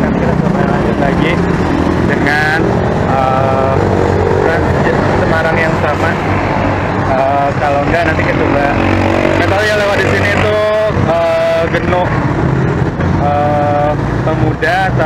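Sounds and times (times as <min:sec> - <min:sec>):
man talking: 0:00.0 - 0:01.4, 0:02.1 - 0:06.2, 0:07.1 - 0:08.8, 0:09.4 - 0:12.2, 0:13.2 - 0:15.0
traffic rumble: 0:00.0 - 0:15.0.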